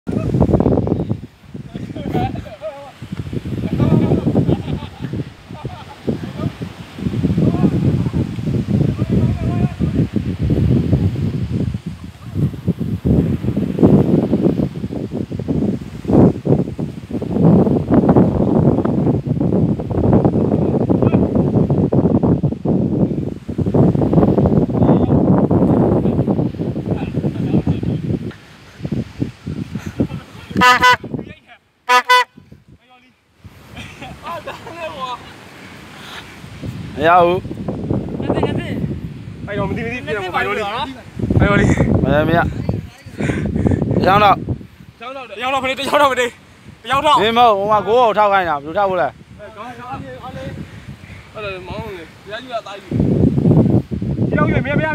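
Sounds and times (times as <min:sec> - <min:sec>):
wind rumbling on microphone: 0:00.0 - 0:54.9.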